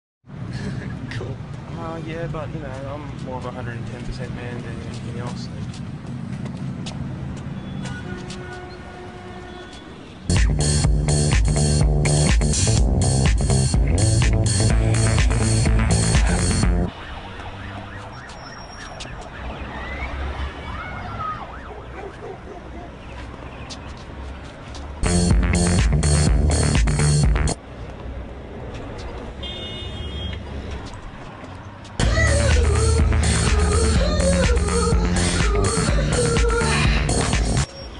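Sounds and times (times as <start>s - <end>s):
city street traffic rumble: 0.3s - 37.9s.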